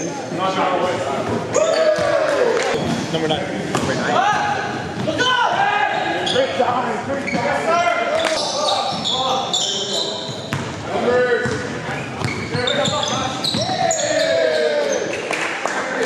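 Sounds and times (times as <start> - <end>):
players' voices echoing: 0.0 - 16.0
shoe squeaks: 6.0 - 10.7, 11.4 - 15.2.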